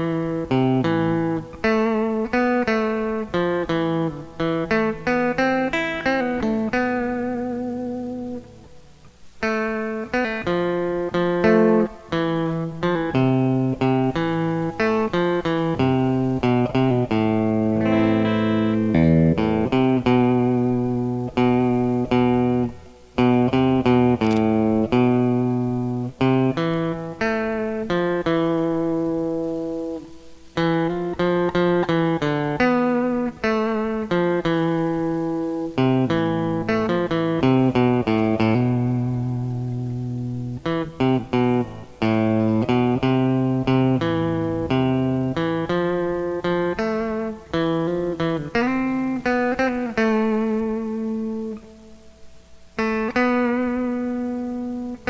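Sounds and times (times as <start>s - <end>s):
clean electric guitar melody: 0.0s - 55.0s.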